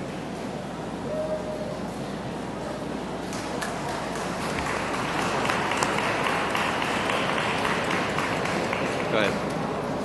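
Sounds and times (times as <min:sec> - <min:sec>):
audience applauding: 0:03.3 - 0:09.4.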